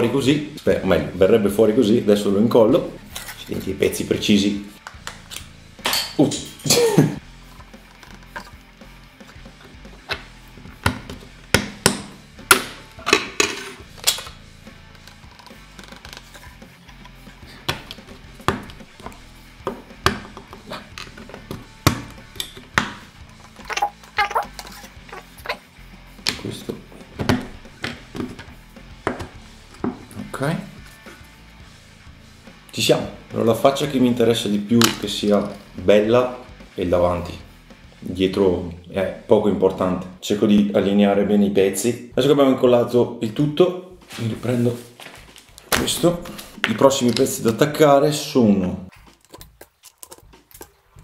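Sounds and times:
background music: 0.0 - 51.0.

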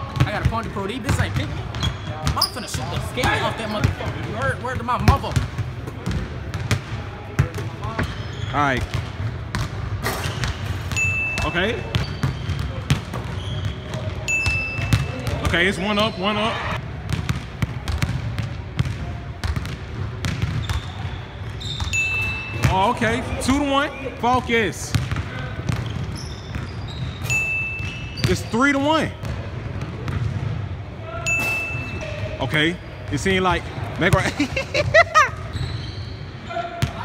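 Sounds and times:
basketball impact: 0.1 - 15.6, 17.0 - 22.9, 24.9 - 26.7
brief squeak: 25.9 - 28.6, 35.5 - 36.3
person laughing: 34.2 - 35.5.

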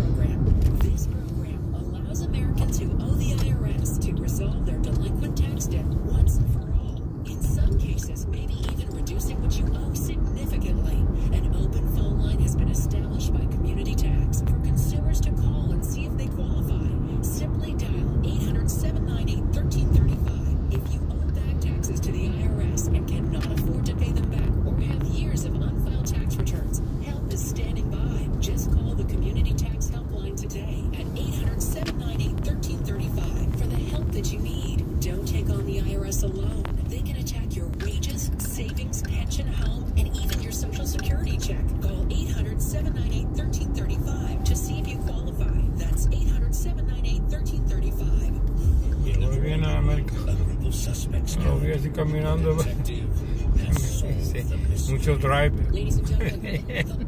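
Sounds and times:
car engine and road noise: 0.0 - 57.0
faint car radio: 0.0 - 57.0.

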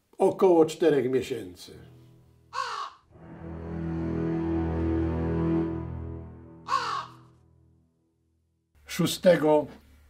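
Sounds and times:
crow cawing: 2.5 - 3.1, 6.6 - 7.4
low music chord: 3.1 - 8.1.

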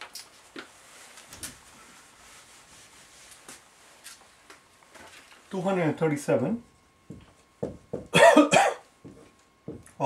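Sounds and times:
man coughing: 8.1 - 8.8.

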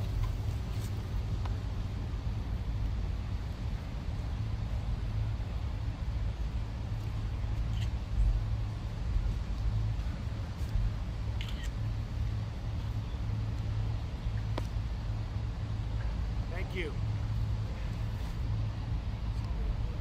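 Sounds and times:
distant road traffic rumble: 0.0 - 20.0
camera shutter clicks: 11.4 - 11.8.

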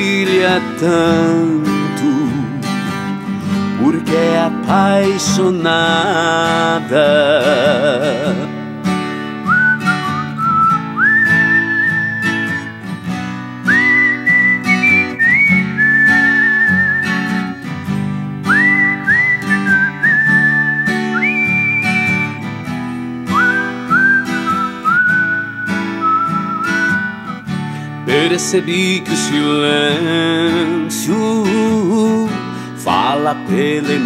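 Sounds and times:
strummed acoustic guitar: 0.0 - 34.0
man whistling a slow melody: 9.4 - 13.0, 13.6 - 17.7, 18.4 - 27.6.

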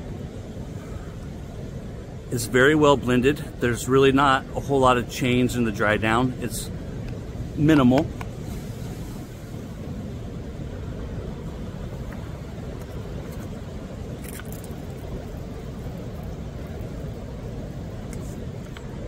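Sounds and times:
ocean surf breaking on rocks: 0.0 - 19.0.

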